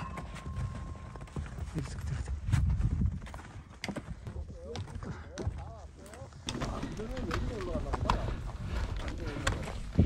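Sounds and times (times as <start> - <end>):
wind rumble on microphone: 1.8 - 3.7.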